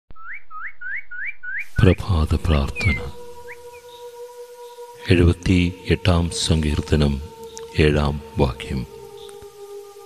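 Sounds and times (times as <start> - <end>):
man speaking: 1.8 - 3.3, 5.0 - 9.0.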